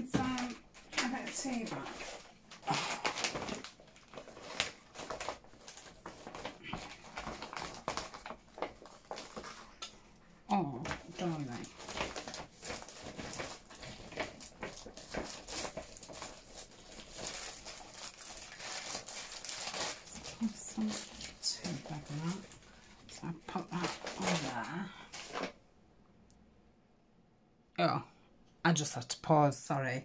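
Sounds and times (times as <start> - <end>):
person talking: 0.0 - 2.0, 10.5 - 11.8, 20.2 - 22.5, 23.1 - 25.1
paper rustling and crinkling: 0.1 - 9.9, 10.8 - 25.6.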